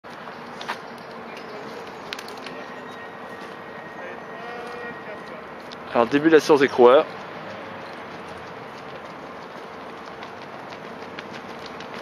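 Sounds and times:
distant traffic hum: 0:00.1 - 0:12.0
man speaking close to microphone: 0:04.4 - 0:07.1.

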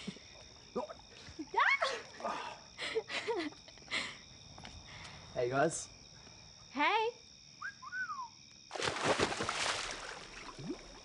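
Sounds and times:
splash into pool: 0:08.7 - 0:11.0
water washing and settling: 0:08.7 - 0:11.0.

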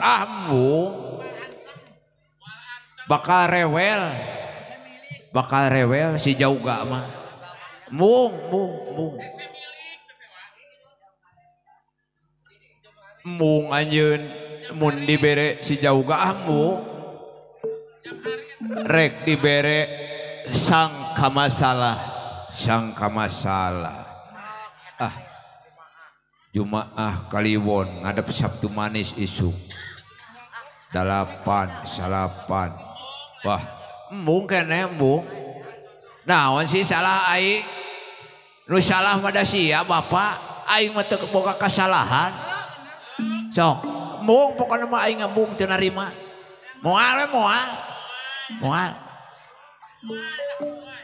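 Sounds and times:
man's exaggerated character voice: 0:07.9 - 0:09.4, 0:18.6 - 0:22.0, 0:43.2 - 0:46.1, 0:48.5 - 0:49.0
faint pitched vocal sound: 0:17.6 - 0:21.2, 0:43.2 - 0:46.2, 0:48.5 - 0:50.9.

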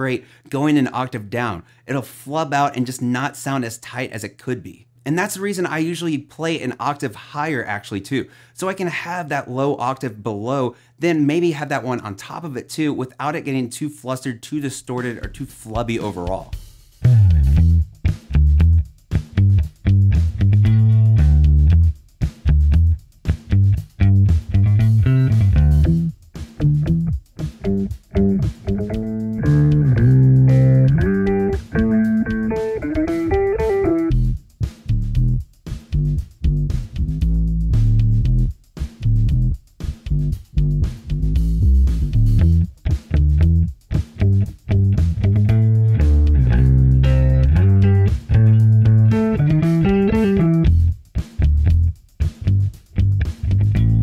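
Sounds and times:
electric bass guitar riff: 0:17.0 - 0:35.4, 0:36.0 - 0:54.0.

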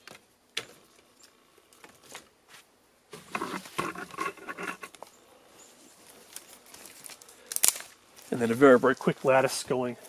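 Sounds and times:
dry sticks rustling and scraping: 0:01.2 - 0:10.0.

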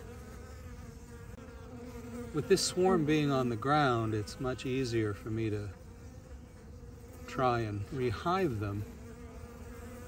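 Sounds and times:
bees buzzing: 0:00.0 - 0:10.0.

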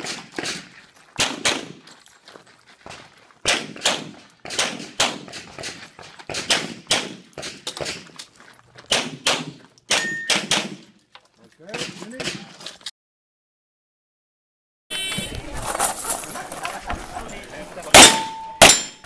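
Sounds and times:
pistol shots with echo: 0:01.2 - 0:01.8, 0:03.4 - 0:08.0, 0:08.9 - 0:10.9, 0:17.9 - 0:19.0.

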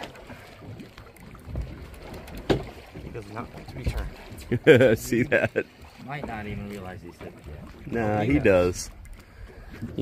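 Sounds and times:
water sloshing against boat hull: 0:00.0 - 0:10.0.

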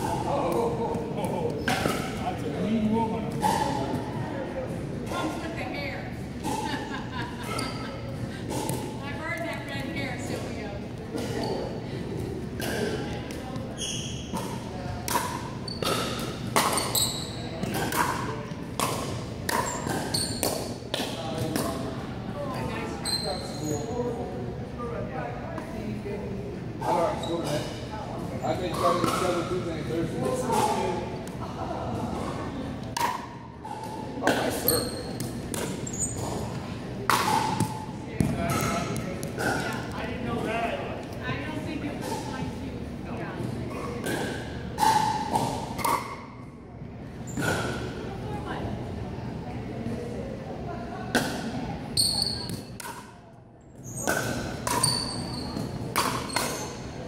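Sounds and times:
sneakers squeaking on hardwood: 0:13.7 - 0:14.5, 0:15.6 - 0:17.7, 0:19.6 - 0:20.7, 0:34.6 - 0:36.6, 0:53.8 - 0:56.9.

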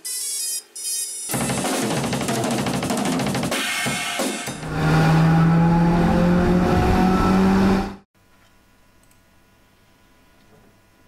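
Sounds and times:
drum kit percussion burst: 0:01.3 - 0:04.7.

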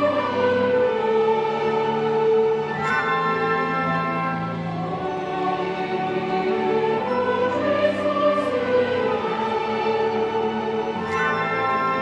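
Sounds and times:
full orchestra: 0:00.0 - 0:12.0
opera chorus singing: 0:00.0 - 0:12.0.

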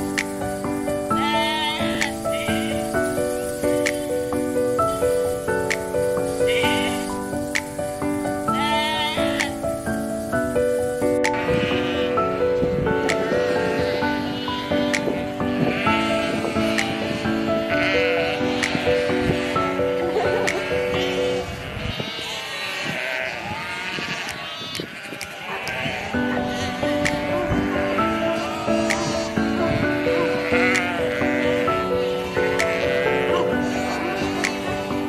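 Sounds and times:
calm background music: 0:00.0 - 0:35.0
sheep bleating: 0:01.0 - 0:07.6, 0:08.4 - 0:09.6, 0:11.3 - 0:12.4, 0:13.0 - 0:35.0.

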